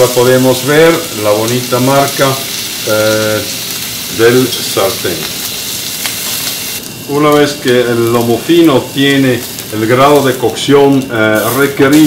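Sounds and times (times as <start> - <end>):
steak sizzling in grill pan: 0.0 - 12.0.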